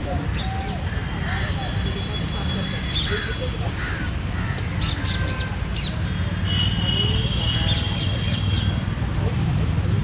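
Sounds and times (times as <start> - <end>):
crow cawing: 3.1 - 4.7.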